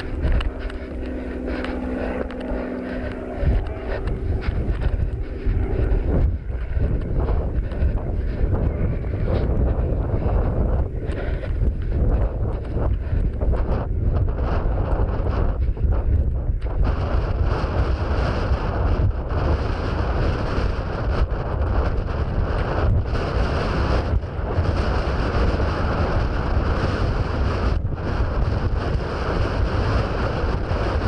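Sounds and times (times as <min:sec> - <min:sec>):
running footsteps on grass: 0:00.0 - 0:31.0
steady hum: 0:00.0 - 0:31.0
wind buffeting microphone: 0:00.0 - 0:31.0.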